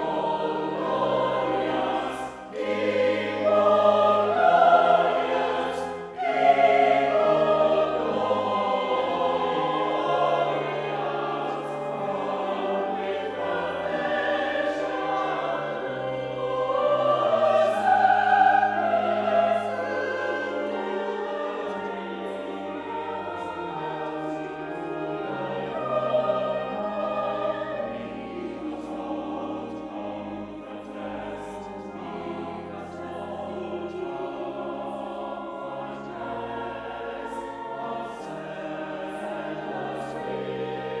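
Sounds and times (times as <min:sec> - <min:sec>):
choir singing in parts: 0:00.0 - 0:41.0
organ holding low notes: 0:00.0 - 0:41.0.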